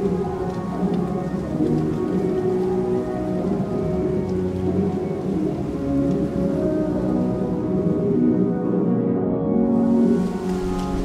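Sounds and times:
muffled pop-rock music: 0.0s - 11.0s
steady rain: 0.0s - 11.0s.

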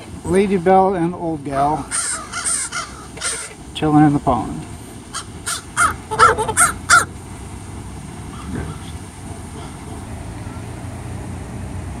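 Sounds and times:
geese honking: 1.8s - 3.7s, 5.0s - 7.1s.

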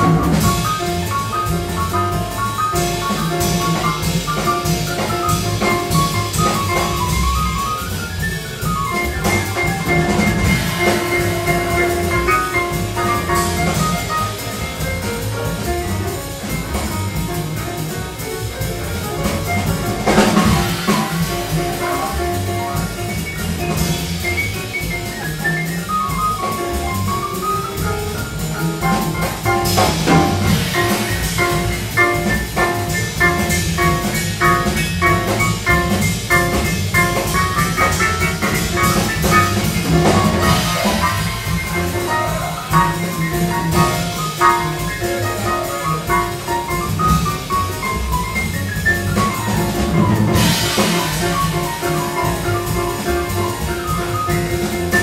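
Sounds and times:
drum kit: 0.0s - 55.0s
jazz piano: 0.0s - 55.0s.

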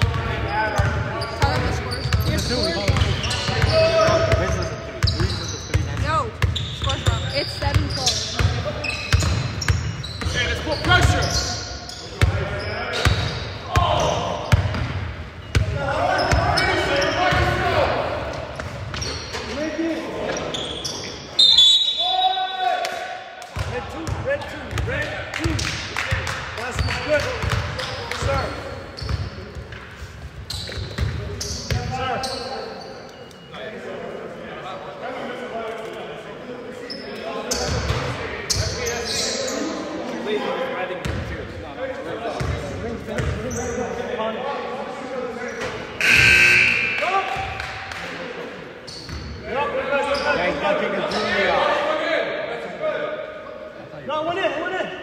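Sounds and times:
players' voices echoing: 0.0s - 55.0s
loud high-pitched tone: 46.0s - 47.1s.

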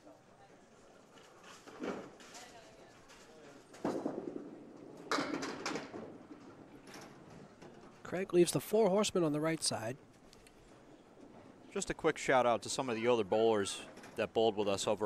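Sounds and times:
bowling ball thudding onto lane: 3.8s - 6.8s.

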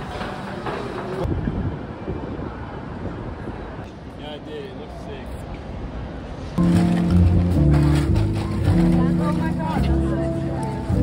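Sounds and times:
wind buffeting microphone: 1.2s - 3.9s.

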